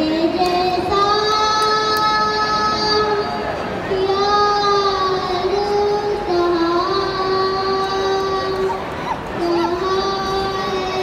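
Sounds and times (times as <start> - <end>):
boy singing long note: 0.0 - 8.6, 9.4 - 11.0.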